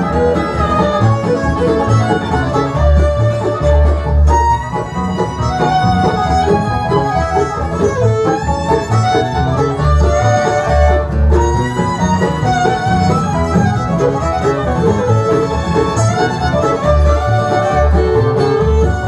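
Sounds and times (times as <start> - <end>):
acoustic guitar: 0.0 - 19.0
fiddle: 0.0 - 19.0
mandolin: 0.0 - 19.0
picked banjo: 0.0 - 19.0
upright bass: 0.0 - 19.0.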